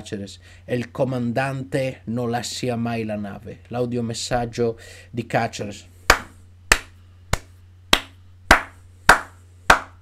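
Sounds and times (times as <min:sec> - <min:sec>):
man clapping hands: 0:06.1 - 0:10.0.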